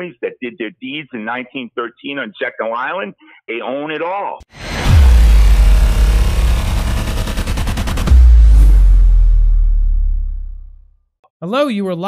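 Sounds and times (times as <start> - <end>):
deep bass drone: 4.5 - 10.9.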